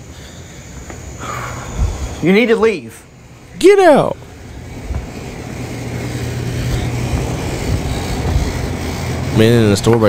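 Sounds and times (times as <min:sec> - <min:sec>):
steady low hum: 0:00.0 - 0:10.0
store room noise: 0:00.0 - 0:10.0.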